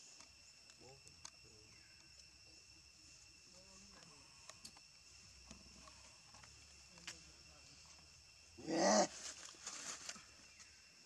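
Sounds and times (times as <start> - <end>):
light rustles: 9.1 - 10.7.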